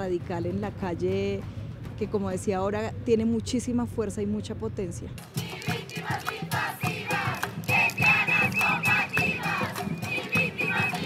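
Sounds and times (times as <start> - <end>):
batucada drumming: 5.2 - 11.0
women chanting and shouting: 5.2 - 11.0.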